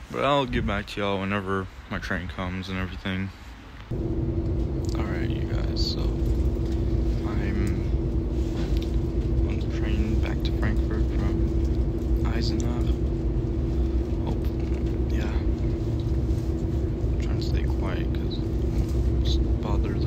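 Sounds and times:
train cabin rumble: 3.9 - 20.0
train hum: 3.9 - 20.0.

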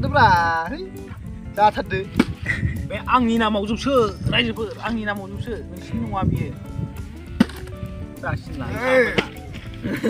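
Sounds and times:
background music: 0.0 - 10.0
plastic bottle landing thud: 2.1 - 2.5, 7.3 - 7.8.

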